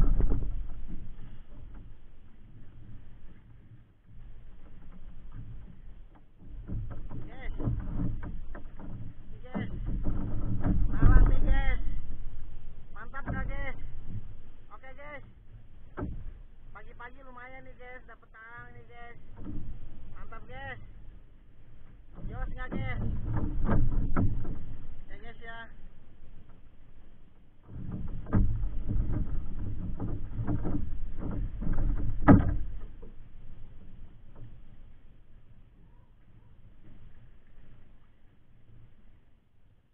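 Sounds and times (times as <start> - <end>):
low rumble: 0.0 - 3.6, 8.4 - 39.0
knocks and thumps on bamboo deck: 0.0 - 39.0.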